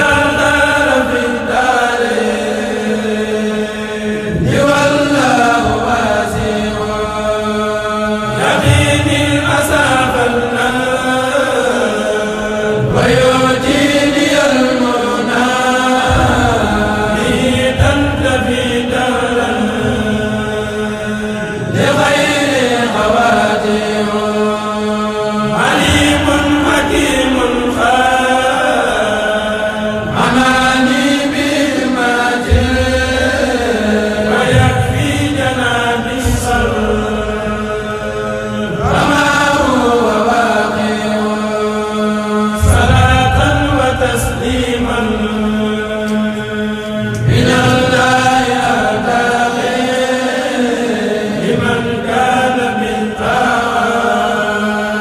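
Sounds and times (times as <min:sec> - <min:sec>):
men's choir chanting: 0:00.0 - 0:55.0.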